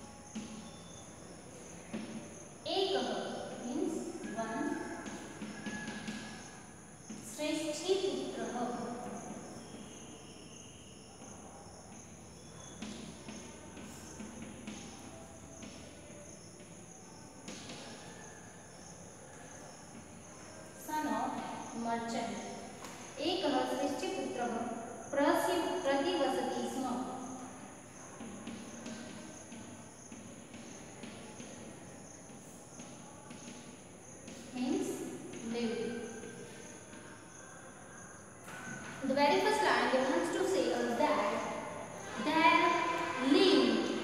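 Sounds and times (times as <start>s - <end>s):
chalk writing on blackboard: 4.2s - 7.2s, 27.9s - 35.4s.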